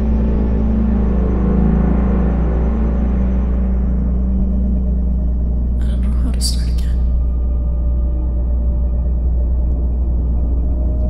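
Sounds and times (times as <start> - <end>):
dark droning film score: 0.0 - 11.0.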